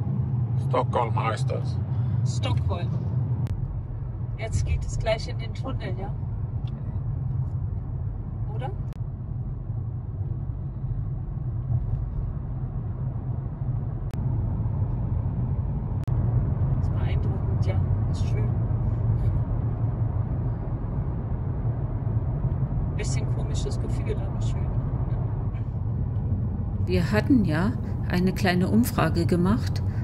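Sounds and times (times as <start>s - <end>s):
car engine and tyre drone: 0.0s - 30.0s.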